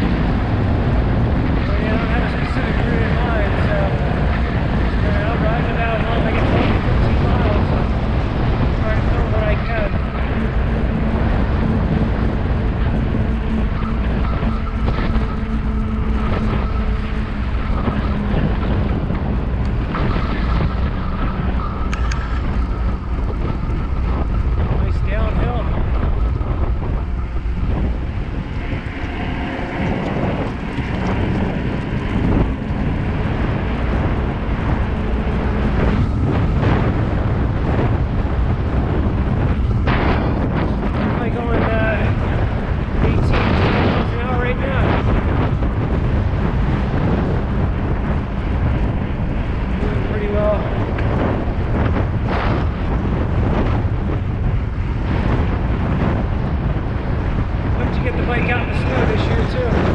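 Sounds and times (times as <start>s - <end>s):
tyre noise on asphalt: 0.0s - 58.2s
wind rushing over microphone: 0.0s - 59.9s.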